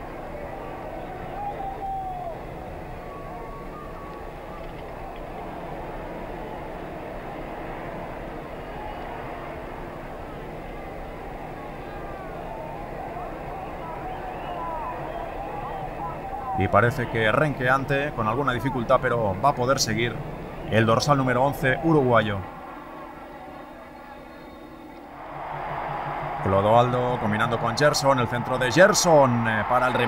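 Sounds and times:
faint crowd calls: 0.0s - 30.0s
stadium crowd murmur: 0.0s - 30.0s.

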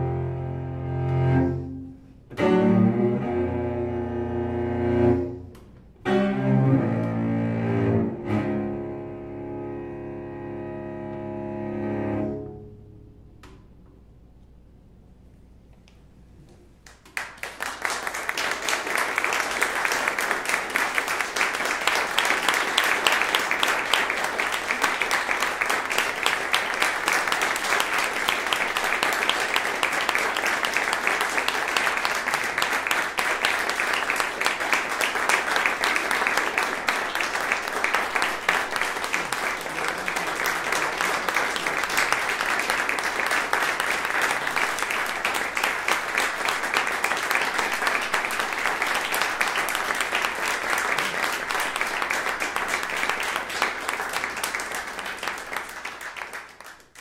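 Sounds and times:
audience applauding: 16.8s - 57.0s.

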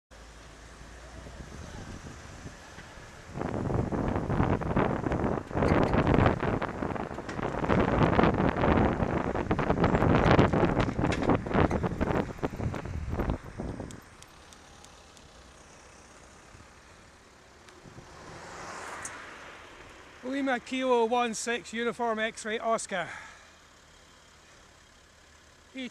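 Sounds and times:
faint in-car hum: 0.2s - 25.9s.

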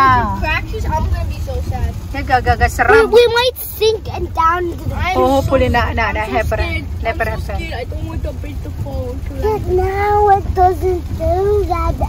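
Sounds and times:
car driving rumble: 0.0s - 12.0s.

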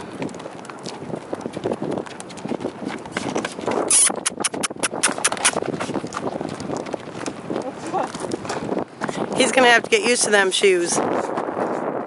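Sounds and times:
horse hoofbeats on gravel: 0.0s - 12.0s
sharp clicks: 3.9s - 5.6s.

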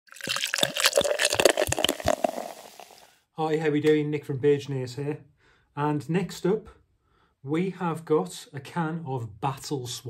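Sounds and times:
liquid drips and bubbling plops: 0.1s - 3.1s.

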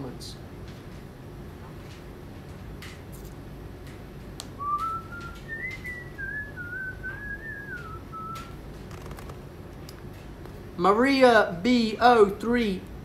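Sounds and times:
man whistling a tune: 4.6s - 8.5s.

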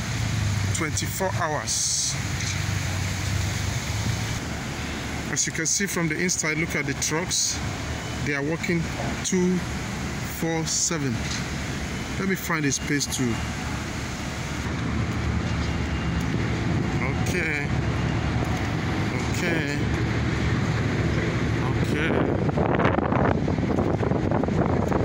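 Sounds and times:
city street traffic: 0.0s - 25.0s
construction machinery: 0.0s - 25.0s
low engine hum: 0.0s - 25.0s
wind on microphone: 20.2s - 25.0s.

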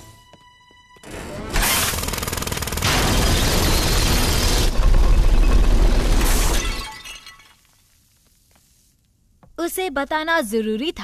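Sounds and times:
cartoon crash with glass shattering: 6.2s - 7.6s.

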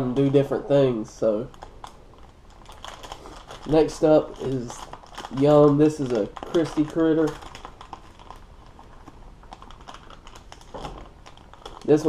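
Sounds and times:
plastic bag crinkling and clicking: 1.4s - 12.0s.

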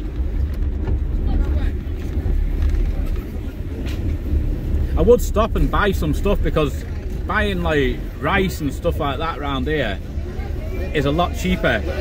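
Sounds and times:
car engine and tyres rumbling: 0.0s - 12.0s.

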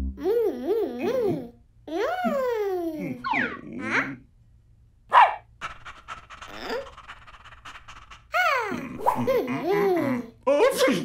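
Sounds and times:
cartoon dog barking: 5.1s - 5.4s.

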